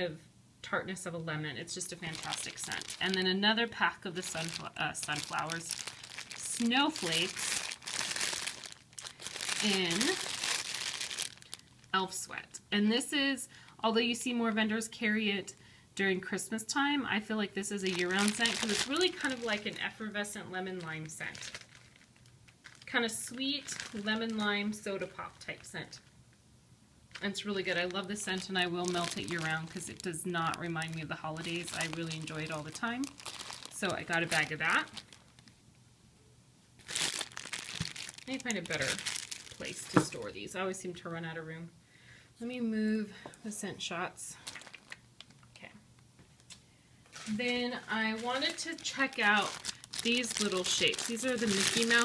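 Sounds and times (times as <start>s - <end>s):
plastic bag crinkling: 1.7s - 12.0s, 17.6s - 26.1s, 27.1s - 35.6s, 36.8s - 40.3s, 44.4s - 45.5s, 46.4s - 52.0s.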